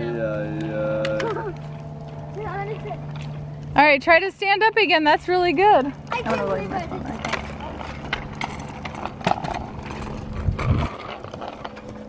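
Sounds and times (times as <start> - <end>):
longboard wheels rolling on concrete: 0.0 - 12.0.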